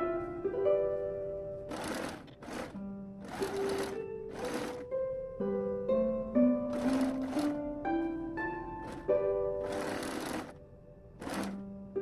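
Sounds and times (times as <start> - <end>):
background music of held notes: 0.0 - 12.0
sewing machine stitching: 1.7 - 4.9, 6.7 - 7.6, 8.8 - 10.6, 11.2 - 11.6.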